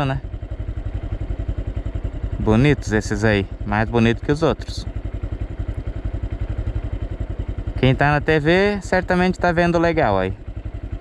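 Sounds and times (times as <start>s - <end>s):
motorcycle engine puttering: 0.0s - 11.0s.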